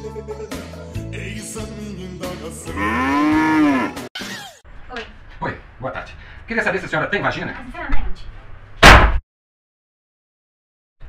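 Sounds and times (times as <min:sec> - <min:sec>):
cow mooing: 0:02.7 - 0:04.1.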